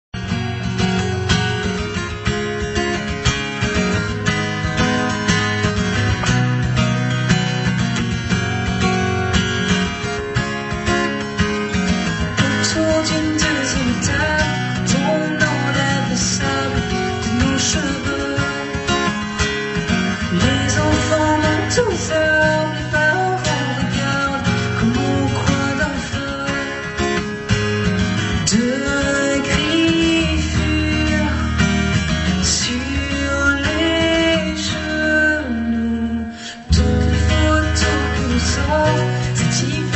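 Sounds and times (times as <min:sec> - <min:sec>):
acoustic guitar strumming: 0:00.2 - 0:39.9
woman singing: 0:12.4 - 0:18.9, 0:20.3 - 0:27.0, 0:28.4 - 0:31.6, 0:32.4 - 0:39.9
keyboard accompaniment: 0:36.7 - 0:39.9.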